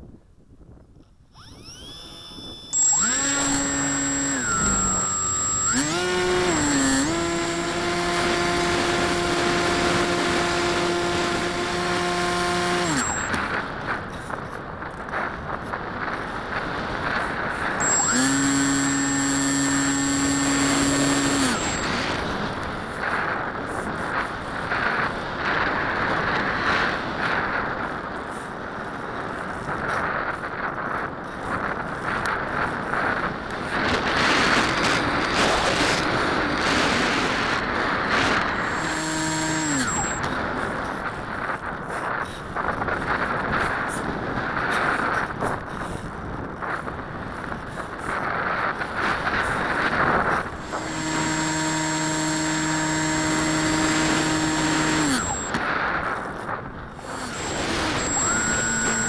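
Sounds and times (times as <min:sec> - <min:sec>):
model plane electric motor whining: 0:01.2 - 0:28.5, 0:29.4 - 0:44.0, 0:47.4 - 0:59.0.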